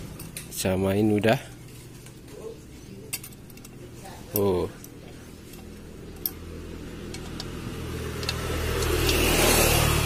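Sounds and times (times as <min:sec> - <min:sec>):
light metallic clinks: 0:03.0 - 0:06.5.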